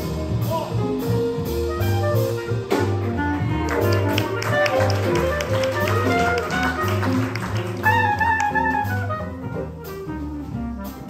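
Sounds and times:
piano melody: 0.0s - 11.0s
walking upright bass: 0.0s - 11.0s.

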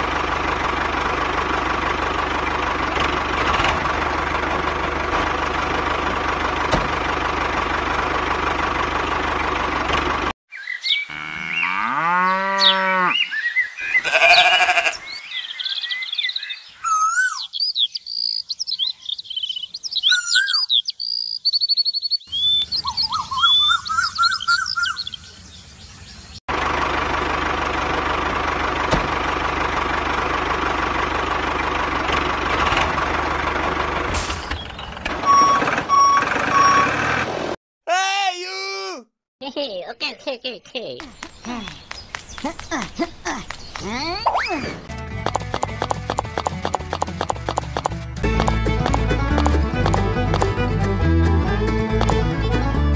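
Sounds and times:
tractor engine running: 0.0s - 10.4s, 22.3s - 37.6s, 41.0s - 52.9s
reversing beeps: 35.2s - 37.1s.

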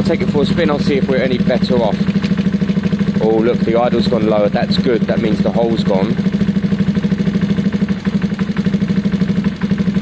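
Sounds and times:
motorcycle engine idling: 0.0s - 10.0s.

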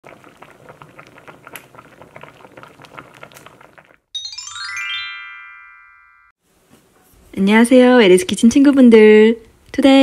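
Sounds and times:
stew bubbling in a pot: 0.0s - 4.1s.

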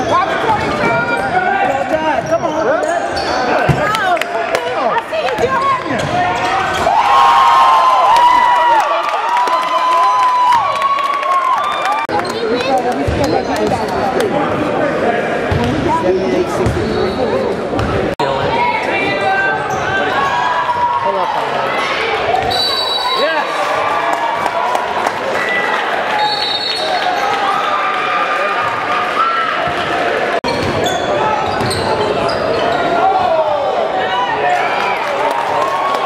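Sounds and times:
sneaker squeaks: 0.0s - 3.9s, 15.5s - 18.0s, 19.6s - 20.4s, 30.4s - 33.0s
crowd chatter in hall: 0.0s - 36.0s.

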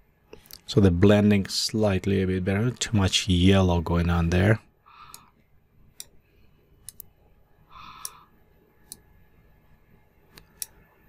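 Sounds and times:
soft breathy noise: 4.8s - 5.6s, 7.6s - 8.6s
computer mouse clicks: 6.8s - 7.1s, 8.0s - 8.2s, 8.8s - 9.0s, 10.3s - 10.9s.

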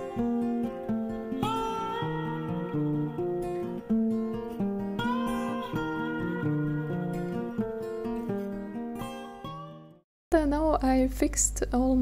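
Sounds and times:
acoustic guitar melody: 0.0s - 10.0s.

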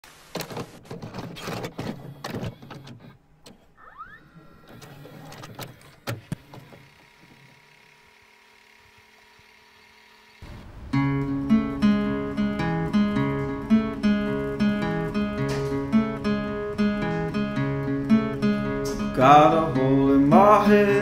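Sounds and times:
video cassette recorder clicks: 4.6s - 6.9s
rising motor whine: 6.6s - 15.3s.

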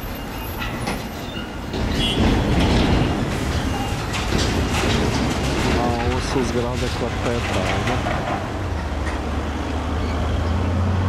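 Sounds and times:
heavy machinery rumbling: 0.6s - 11.0s.

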